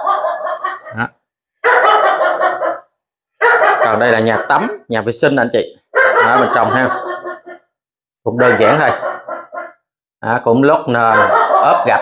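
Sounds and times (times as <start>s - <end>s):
dogs barking: 0.0s - 4.9s, 5.9s - 9.9s, 11.0s - 12.0s.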